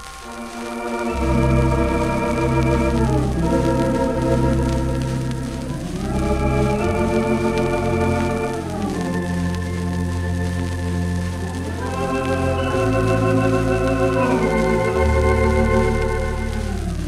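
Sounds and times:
deep pedal bass: 0:00.0 - 0:17.0
theatre organ chords: 0:00.0 - 0:17.0.

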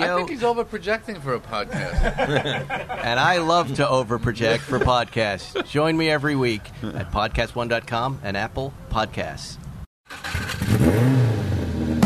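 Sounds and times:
car engine revving: 0:10.1 - 0:12.0.

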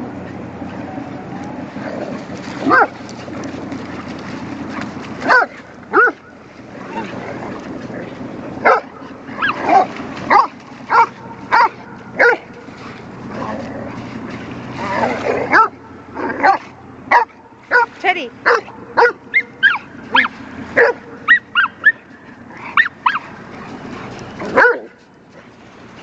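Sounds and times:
dogs barking: 0:02.6 - 0:03.0, 0:04.7 - 0:07.2, 0:08.6 - 0:12.9, 0:15.3 - 0:25.0.

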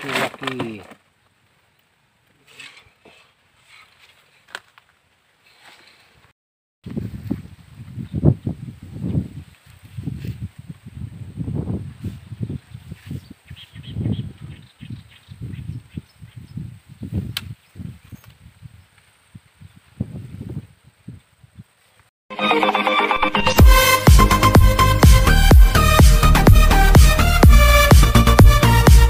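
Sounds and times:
wind buffeting microphone: 0:06.9 - 0:21.8
electronic dance music: 0:22.3 - 0:29.0.

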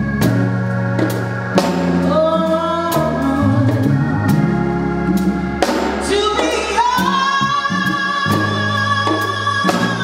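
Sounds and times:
keyboards drums and strings: 0:00.0 - 0:10.0
woman singing lead: 0:01.9 - 0:10.0
female backing vocals: 0:02.0 - 0:04.5.

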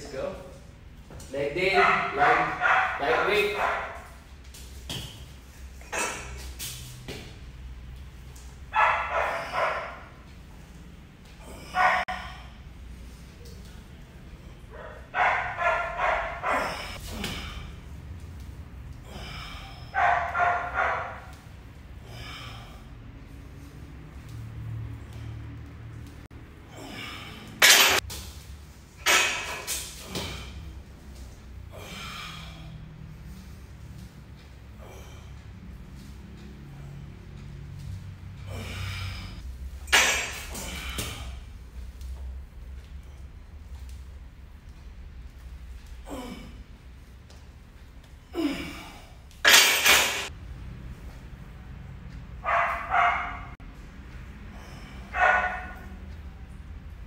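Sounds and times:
steady low hum: 0:00.0 - 0:49.5
dog barking: 0:01.7 - 0:04.1, 0:08.7 - 0:10.1, 0:11.6 - 0:12.3, 0:14.8 - 0:16.8, 0:19.9 - 0:21.3, 0:52.4 - 0:53.6, 0:55.1 - 0:55.9
man breathing hard: 0:16.4 - 0:18.0, 0:18.9 - 0:20.0, 0:21.7 - 0:24.0, 0:26.6 - 0:27.6, 0:31.6 - 0:33.9, 0:34.6 - 0:36.0, 0:38.4 - 0:39.4, 0:54.4 - 0:55.6.

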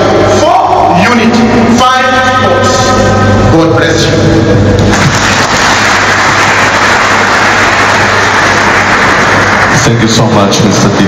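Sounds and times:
audience applauding: 0:04.8 - 0:10.5.

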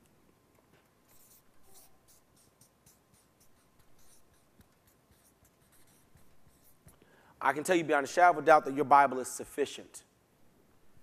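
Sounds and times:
marker writing on paper: 0:00.8 - 0:07.0.

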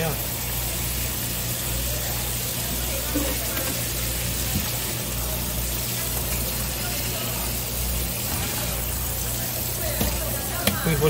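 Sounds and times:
tap water spraying on cutting board: 0:00.0 - 0:11.0.

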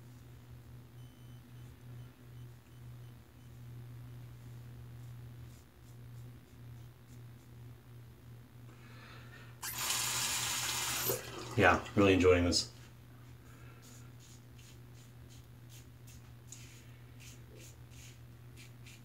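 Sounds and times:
bathroom tap running: 0:09.6 - 0:12.0.

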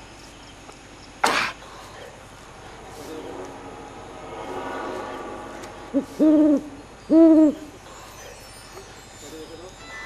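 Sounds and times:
owl hooting: 0:05.9 - 0:08.3.

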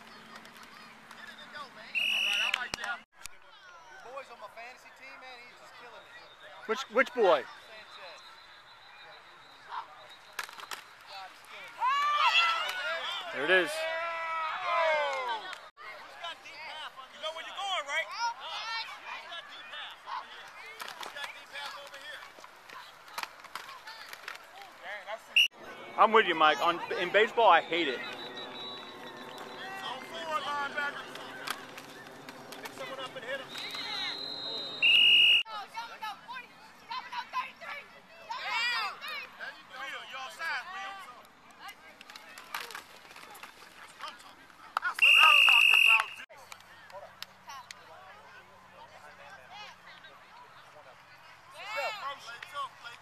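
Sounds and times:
high whistle: 0:01.9 - 0:02.8, 0:27.6 - 0:30.0, 0:33.4 - 0:35.5, 0:45.0 - 0:46.3
voices shouting: 0:11.6 - 0:16.1, 0:25.4 - 0:41.1
distant voices calling: 0:25.4 - 0:35.4.

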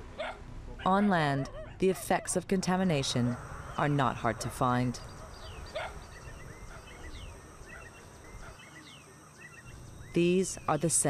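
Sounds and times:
faint bird chirps: 0:03.1 - 0:10.9.

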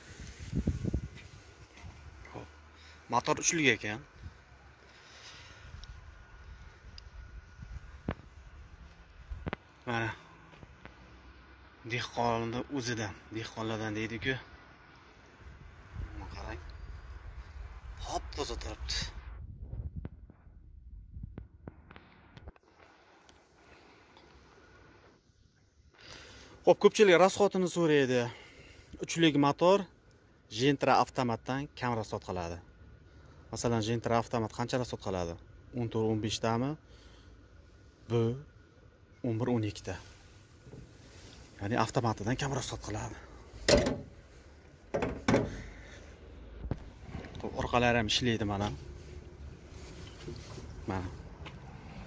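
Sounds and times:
car bonnet slamming shut: 0:43.6 - 0:44.2, 0:44.9 - 0:45.8.

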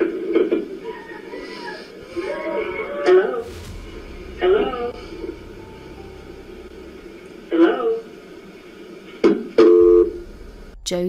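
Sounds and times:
sudden short noise: 0:03.3 - 0:08.6.

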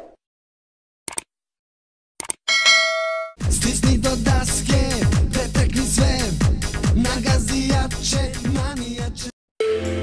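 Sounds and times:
bright bell ding: 0:02.5 - 0:03.4.

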